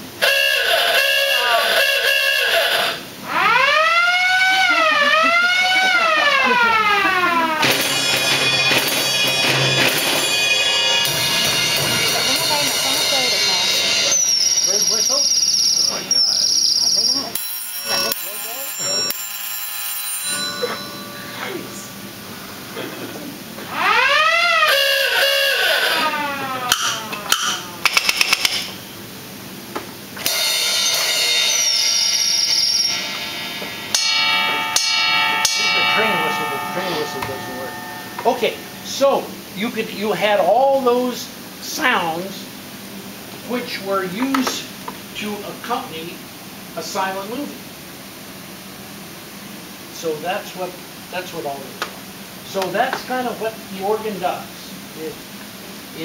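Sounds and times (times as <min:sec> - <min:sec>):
siren winding up and down: 0:00.2 - 0:12.7, 0:23.7 - 0:28.7
high whistle: 0:07.6 - 0:19.2
bell ringing in bursts: 0:07.6 - 0:22.1, 0:30.3 - 0:39.6.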